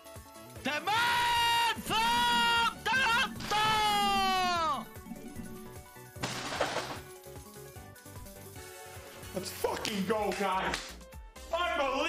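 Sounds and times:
celebration game music: 0.4s - 12.0s.

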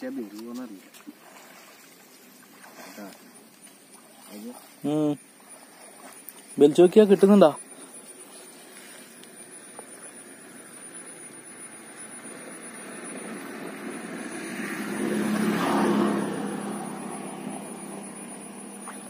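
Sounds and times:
distant engine drone: 0.0s - 19.0s.

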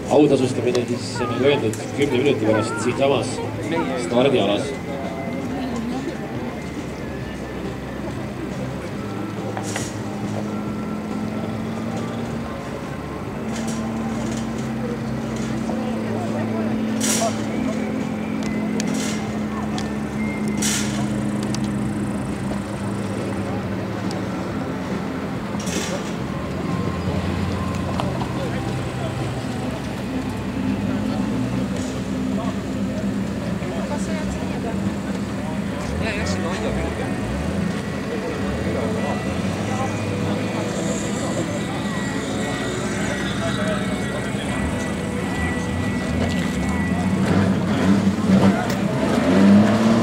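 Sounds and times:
car engines running: 0.0s - 50.0s
people talking: 0.0s - 50.0s.

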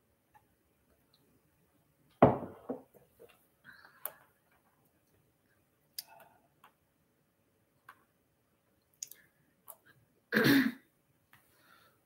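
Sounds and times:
woman clearing throat: 10.4s - 10.8s.

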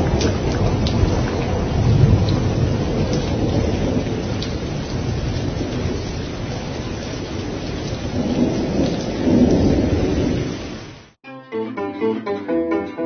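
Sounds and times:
low rolling thunder: 0.0s - 11.0s
steady rain: 0.0s - 11.2s.

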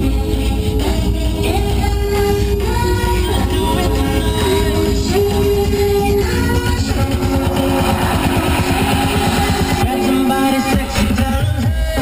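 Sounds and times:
vehicle engine and road noise: 0.0s - 9.8s.

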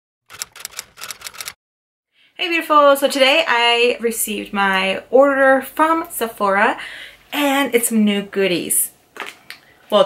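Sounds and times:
quick sharp clicks: 0.3s - 1.6s.

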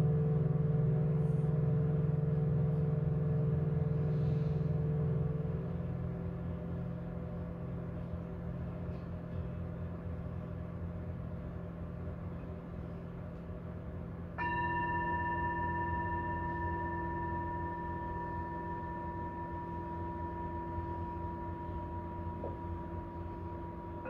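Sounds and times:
singing bowls ringing deep: 0.0s - 24.0s
singing bowl struck high tone: 14.3s - 24.0s.

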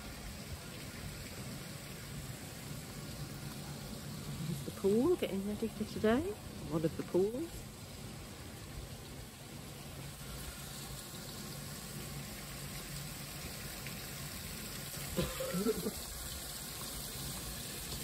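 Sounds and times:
running water: 0.0s - 18.0s
person's voice: 4.5s - 7.6s.

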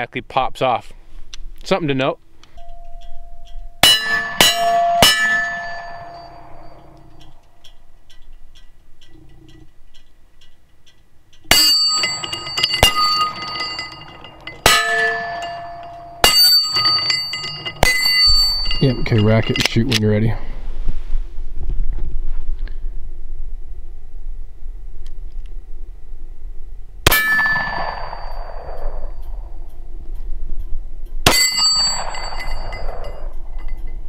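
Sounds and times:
metallic clang: 2.5s - 9.8s, 11.4s - 20.4s, 27.0s - 30.3s, 31.1s - 34.0s.

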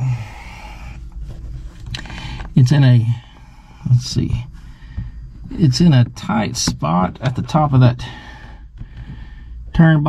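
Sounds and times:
rustling and scraping handling noise: 1.0s - 2.8s.

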